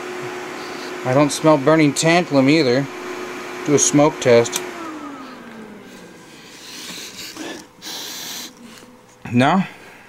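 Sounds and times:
low hum sliding down: 1.6s - 8.9s
person sniffing: 5.2s - 9.0s.

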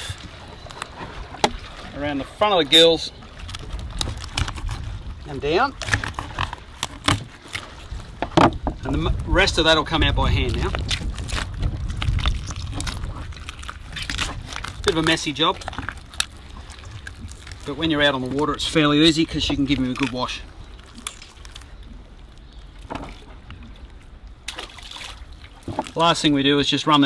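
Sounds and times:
small crackles: 0.0s - 1.9s, 2.8s - 26.3s
low boat rumble: 0.0s - 27.0s
wet tearing and squelching: 10.3s - 22.5s.

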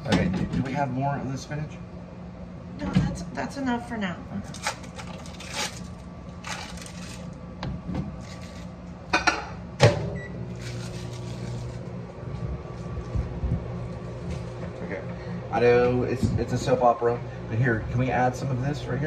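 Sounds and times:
low steady hum: 0.0s - 19.0s
plastic wrapper crinkling: 4.5s - 7.4s, 10.6s - 11.8s.

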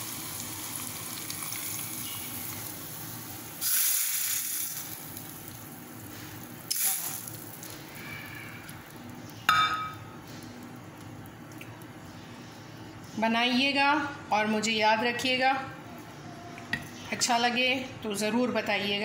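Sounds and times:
hot oil sizzling on food: 0.0s - 8.1s
metal pan clinking: 9.5s - 10.0s.

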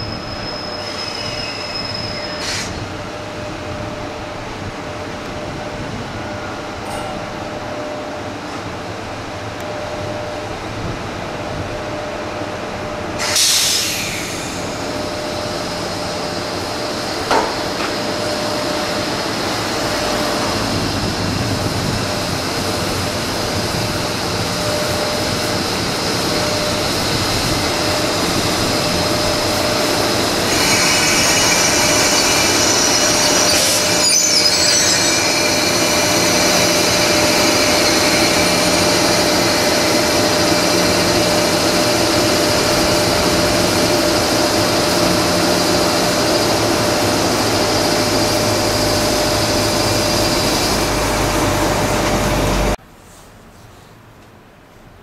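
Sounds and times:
freight train running noise: 0.0s - 52.9s
high-pitched squealing: 27.6s - 43.4s.

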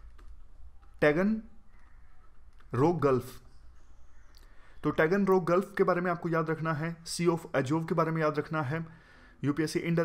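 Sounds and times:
low electrical hum: 0.0s - 10.0s
man speaking: 1.0s - 1.6s, 2.7s - 3.5s, 4.8s - 10.0s.

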